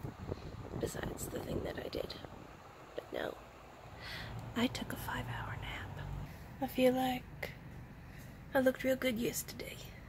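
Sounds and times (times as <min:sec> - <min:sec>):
woman whispering: 0:04.6 - 0:06.2.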